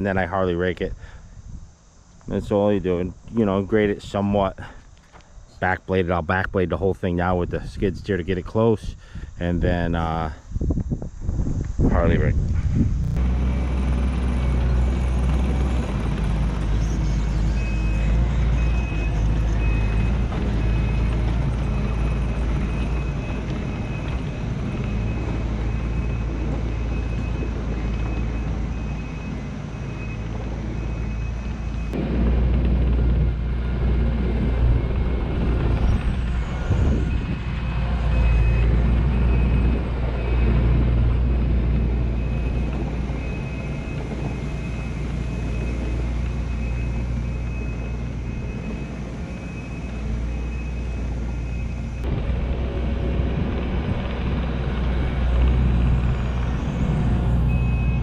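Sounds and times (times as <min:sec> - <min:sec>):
diesel engine working under load: 0:12.5 - 0:58.0
backup alarm beeping: 0:14.3 - 0:32.0, 0:34.3 - 0:52.1, 0:56.0 - 0:58.0.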